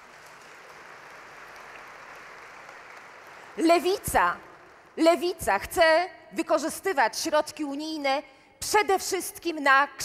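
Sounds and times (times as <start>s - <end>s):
audience applauding: 0.0s - 5.0s.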